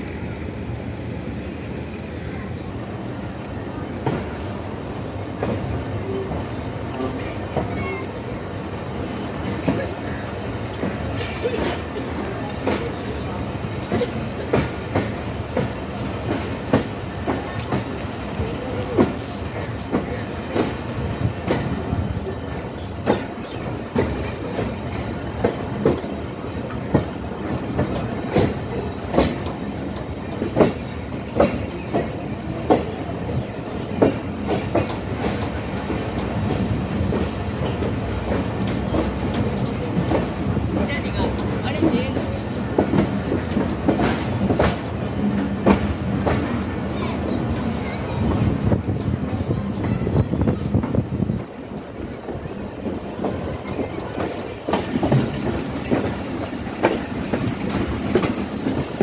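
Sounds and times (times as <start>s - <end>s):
train coaches rumbling: 0.0s - 59.0s
wheels clacking over rail joints: 3.5s - 59.0s.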